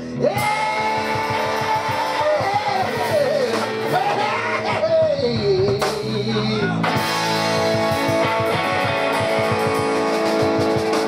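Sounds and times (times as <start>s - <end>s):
pulsing bass line: 0.0s - 11.0s.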